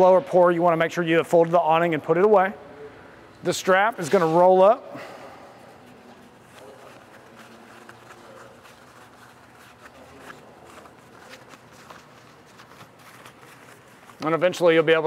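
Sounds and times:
fabric strap handling: 0:05.9 - 0:14.7.

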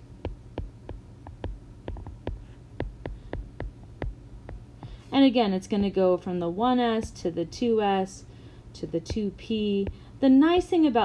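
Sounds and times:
steady low hum: 0:00.0 - 0:11.0
stylus tapping on glass screen: 0:00.2 - 0:05.0.

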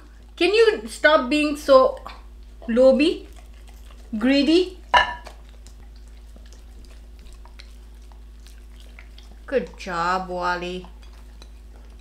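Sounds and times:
dogs eating wet mouth sounds: 0:00.0 - 0:12.0
steady low hum: 0:00.0 - 0:12.0.

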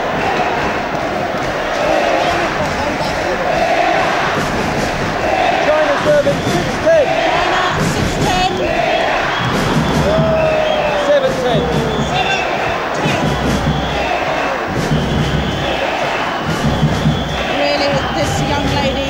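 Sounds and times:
crowd shouting: 0:00.0 - 0:19.0
sharp knocks: 0:00.1 - 0:10.6, 0:11.2 - 0:18.9.

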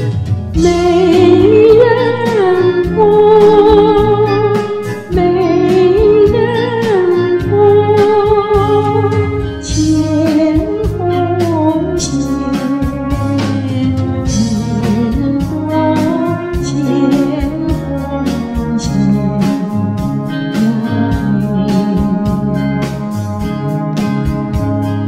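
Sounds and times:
pop song instrumental: 0:00.0 - 0:25.0
person singing wavering melody: 0:00.6 - 0:22.8.

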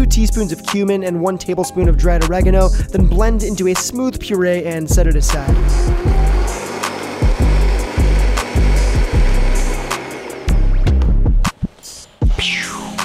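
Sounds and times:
hip-hop beat with heavy bass: 0:00.0 - 0:11.6
blender running: 0:05.3 - 0:11.2.

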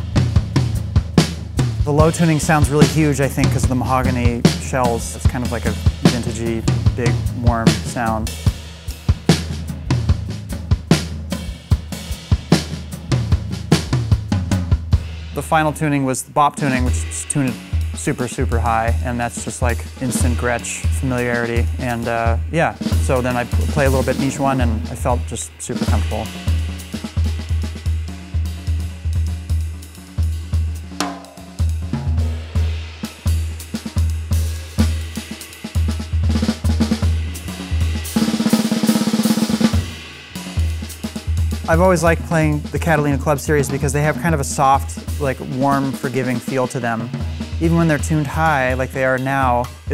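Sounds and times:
cymbals: 0:00.0 - 0:49.9
drum kit playing groove: 0:00.0 - 0:49.9.

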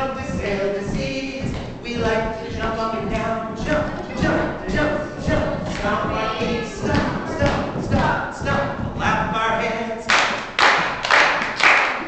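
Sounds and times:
man and children singing: 0:00.0 - 0:10.9
thuds on floor: 0:00.2 - 0:09.8.

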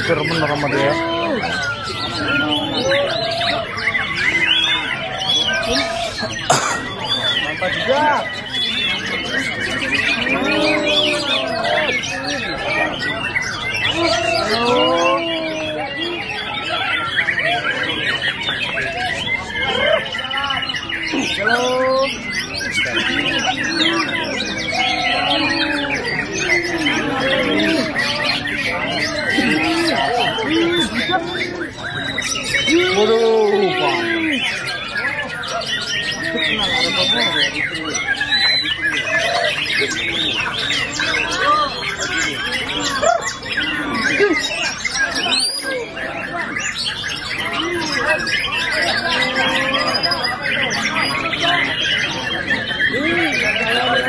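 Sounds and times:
crowd voices: 0:00.0 - 0:54.0
people calling out: 0:00.0 - 0:54.0
songbirds whistling and chattering: 0:00.0 - 0:54.0.

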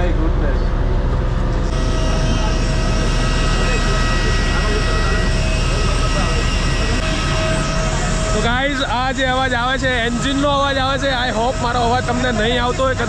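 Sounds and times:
jet engines roaring and whining: 0:00.0 - 0:13.0
faint voices: 0:01.6 - 0:13.0.

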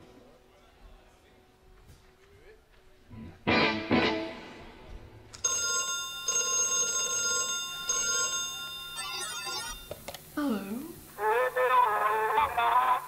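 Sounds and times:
synthesized telephone ring tone: 0:05.4 - 0:10.0
chirping electronic tones: 0:08.9 - 0:10.0.

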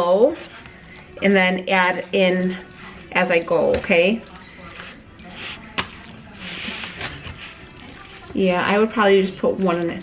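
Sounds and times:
spoon stirring wet mixture: 0:00.0 - 0:10.0.

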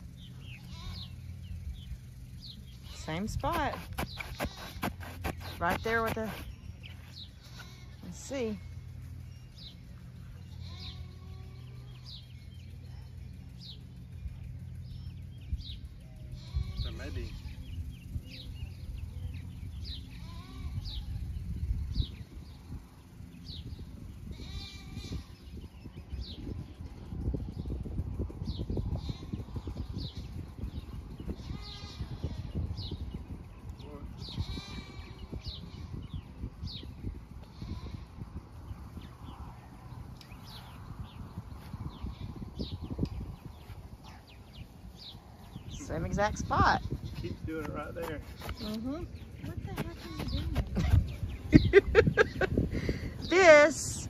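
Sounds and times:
steady low hum: 0:00.0 - 0:54.0
farm animal bleating: 0:00.4 - 0:01.4, 0:02.8 - 0:06.5, 0:07.2 - 0:08.7, 0:10.4 - 0:12.1, 0:16.0 - 0:17.7, 0:19.9 - 0:21.2, 0:24.2 - 0:25.6, 0:28.8 - 0:30.4, 0:31.3 - 0:33.0, 0:33.9 - 0:36.3, 0:37.4 - 0:38.2, 0:48.6 - 0:50.6
wind on microphone: 0:16.4 - 0:54.0.

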